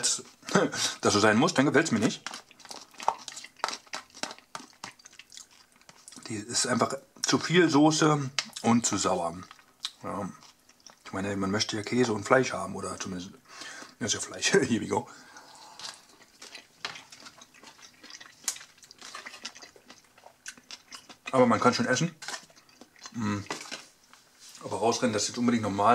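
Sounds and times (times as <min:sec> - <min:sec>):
person chewing food: 0:02.0 - 0:07.5, 0:08.4 - 0:11.1, 0:15.1 - 0:24.4.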